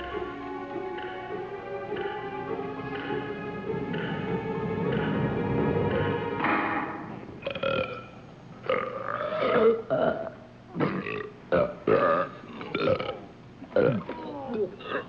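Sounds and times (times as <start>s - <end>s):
music cue: 0.0s - 7.4s
people belching loudly: 7.4s - 15.0s.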